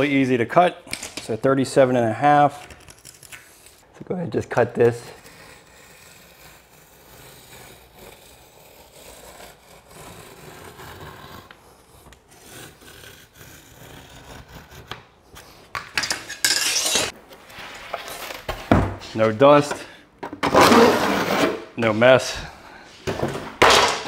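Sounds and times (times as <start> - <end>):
harsh scrape: 4.8 - 14.8, 16.2 - 19.4, 20.4 - 22.3
foam panel being cut by hand: 4.8 - 15.0.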